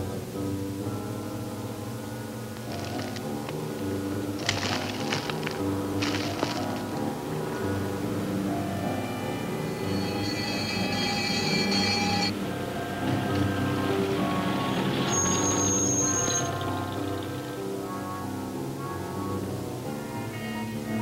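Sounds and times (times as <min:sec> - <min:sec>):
music of held chords: 0:00.0 - 0:21.0
high sustained notes: 0:06.9 - 0:18.5.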